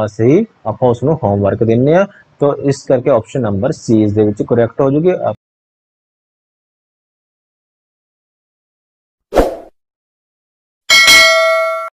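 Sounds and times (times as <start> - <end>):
bright bell-like ding: 10.9 - 12.0.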